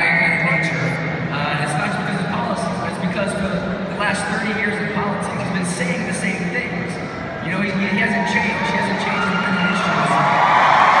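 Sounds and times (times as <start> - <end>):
crowd cheering and shouting: 7.5 - 11.0.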